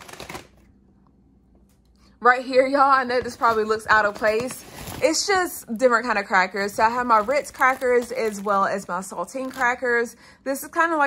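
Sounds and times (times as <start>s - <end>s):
foil pouches rustling: 0.0s - 0.6s, 3.2s - 10.1s.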